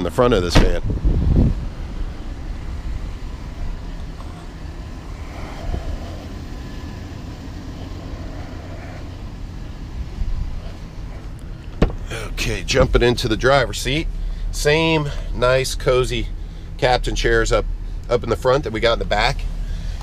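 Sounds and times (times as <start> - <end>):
low outdoor rumble: 0.0 - 20.0
car door latch click: 11.7 - 12.0.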